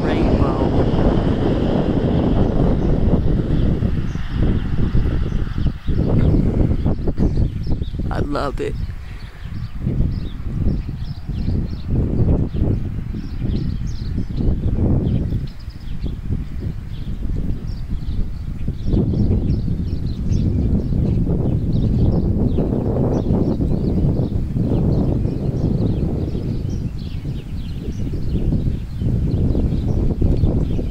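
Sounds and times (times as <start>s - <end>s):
birds chirping and singing: 0.0s - 30.9s
wind buffeting microphone: 0.0s - 30.9s.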